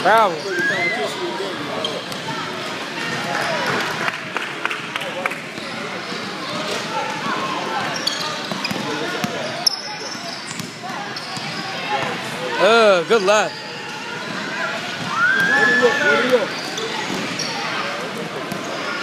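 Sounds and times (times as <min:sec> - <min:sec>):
voices of players and spectators: 0:00.0 - 0:19.0.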